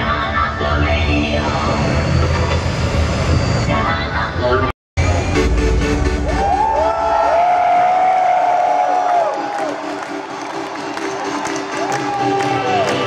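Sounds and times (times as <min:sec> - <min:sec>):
loud bass-heavy concert music: 0:00.0 - 0:13.0.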